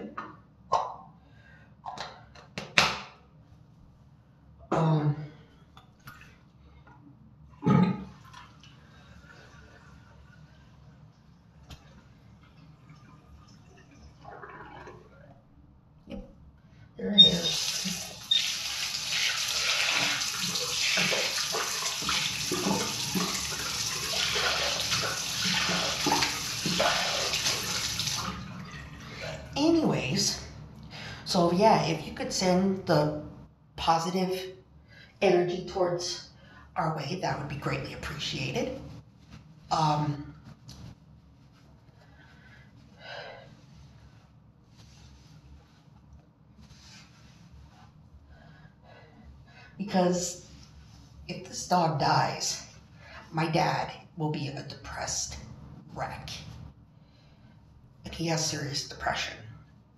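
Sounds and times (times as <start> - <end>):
water splashing: 12.8 - 15.2, 17.2 - 29.6
water running from tap: 17.2 - 29.6.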